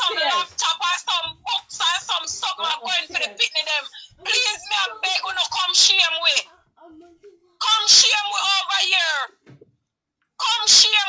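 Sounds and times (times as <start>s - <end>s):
woman murmuring: 0.0s - 0.6s.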